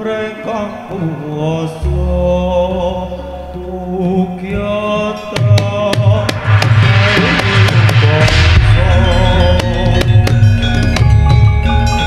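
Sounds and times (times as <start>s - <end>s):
person singing chant-like melody: 0.0s - 10.4s
gamelan music: 0.7s - 12.0s
deep sustained low tone: 0.9s - 4.8s.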